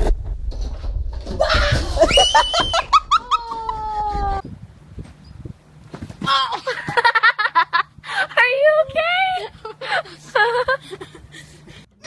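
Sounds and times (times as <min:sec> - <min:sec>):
low rumbling handling noise: 0:00.0 - 0:07.1
high-pitched wailing cries: 0:01.4 - 0:04.4.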